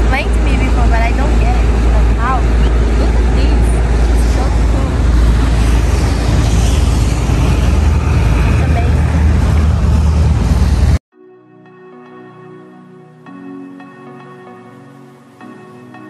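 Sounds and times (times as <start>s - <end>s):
motorboat engine rumble: 0.0s - 11.0s
wind buffeting microphone: 0.0s - 11.0s.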